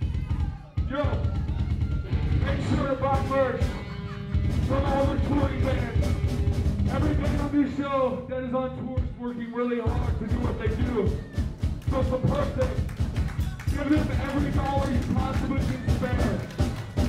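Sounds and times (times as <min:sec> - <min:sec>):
live rock band playing: 0:01.7 - 0:07.8.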